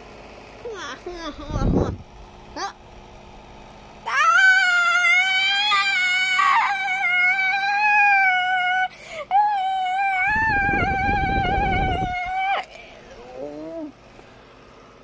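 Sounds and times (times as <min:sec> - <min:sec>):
child's high-pitched wavering note: 0:04.1 - 0:12.7.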